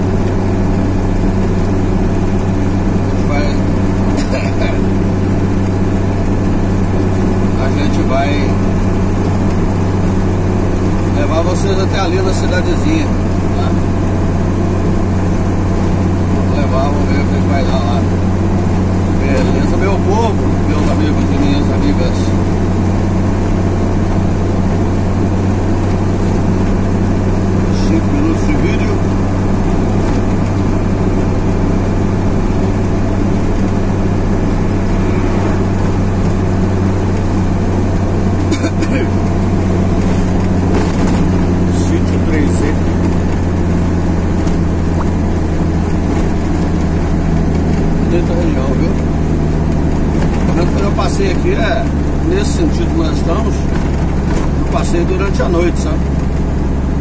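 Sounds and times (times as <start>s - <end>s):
engine drone: 0.0s - 57.0s
road noise: 0.0s - 57.0s.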